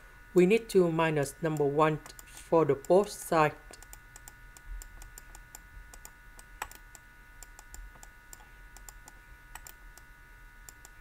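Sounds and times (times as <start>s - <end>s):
faint electrical hum: 0.0s - 11.0s.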